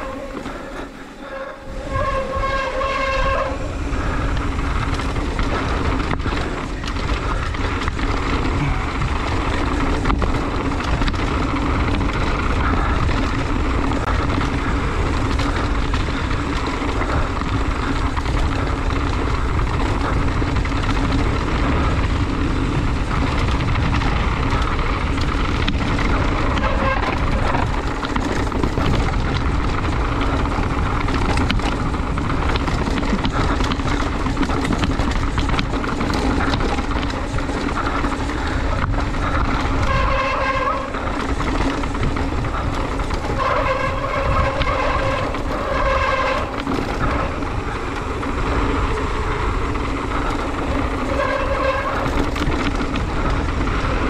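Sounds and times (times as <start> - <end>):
tyres rushing on dirt and rock: 0.0 - 54.0
wind on microphone: 0.0 - 54.0.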